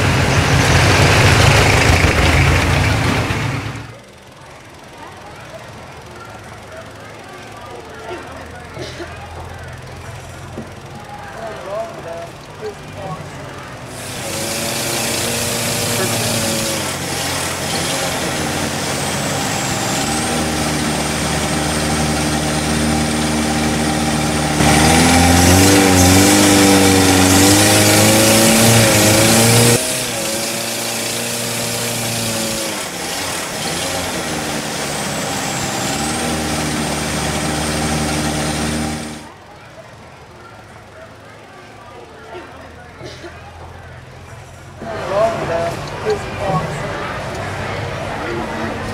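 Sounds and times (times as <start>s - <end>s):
boat engine running: 0.0s - 4.9s, 9.3s - 39.4s.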